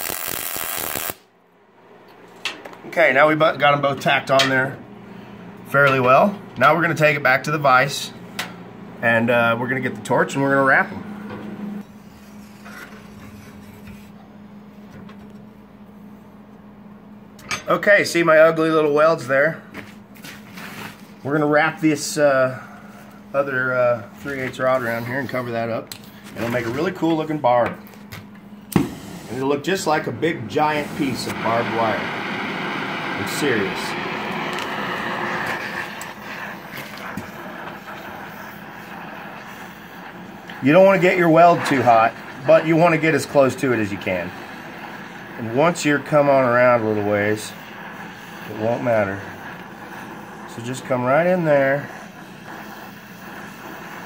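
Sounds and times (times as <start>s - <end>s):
torch flame hissing: 0.0s - 1.3s, 20.1s - 54.0s
steady low hum: 0.0s - 54.0s.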